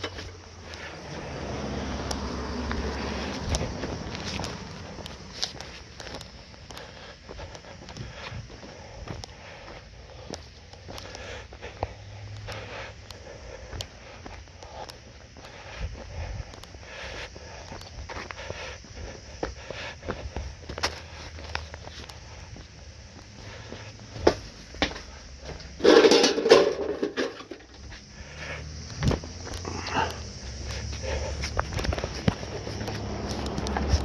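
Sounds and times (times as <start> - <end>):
footsteps on concrete: 0.0 - 34.0.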